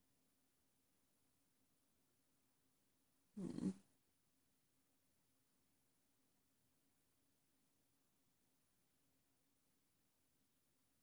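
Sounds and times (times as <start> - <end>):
short vocal sound: 3.4 - 3.8.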